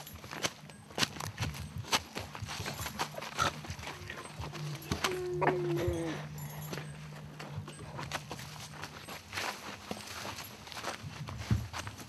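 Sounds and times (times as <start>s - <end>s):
low steady hum: 0.0s - 11.5s
footsteps tapping on ground: 0.0s - 12.0s
faint voice: 3.9s - 6.5s.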